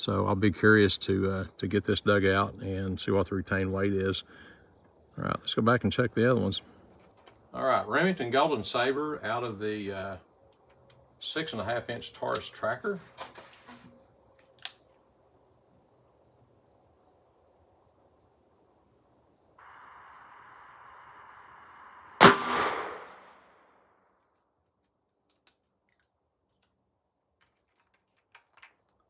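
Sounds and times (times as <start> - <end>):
revolver shot: 22.0 - 23.5.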